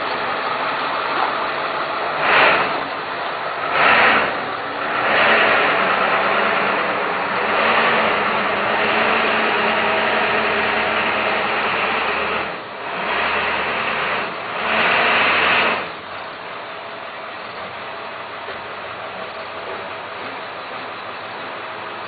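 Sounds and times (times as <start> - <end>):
rushes of noise: 0.0 - 16.0
vehicle engine running: 0.0 - 22.0.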